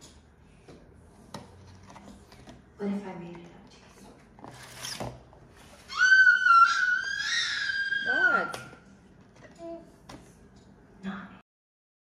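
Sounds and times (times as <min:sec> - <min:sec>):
dog whining: 0:05.9 - 0:08.7.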